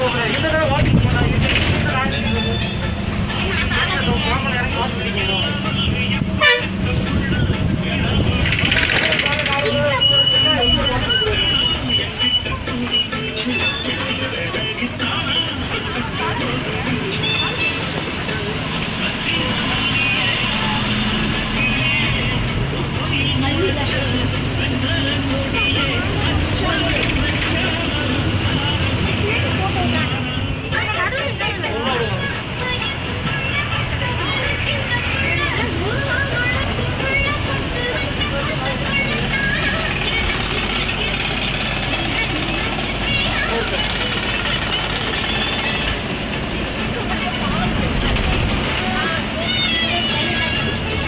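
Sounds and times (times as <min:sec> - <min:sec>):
bus engine and road noise: 0:00.0 - 0:51.0
voices: 0:00.0 - 0:51.0
music: 0:02.4 - 0:09.2, 0:11.1 - 0:47.3.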